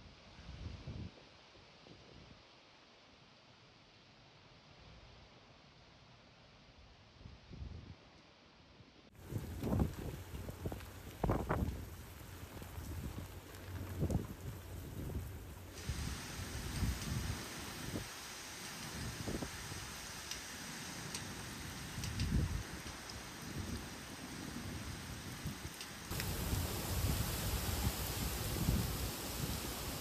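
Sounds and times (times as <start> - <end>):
heavy rain hissing: 9.2 - 30.0
wind gusts buffeting microphone: 9.2 - 30.0.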